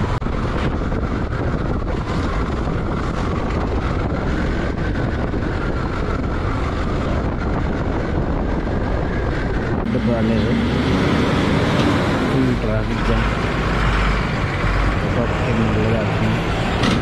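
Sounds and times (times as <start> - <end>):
vehicle road noise: 0.0 - 17.0
wind rumbling on microphone: 0.0 - 17.0.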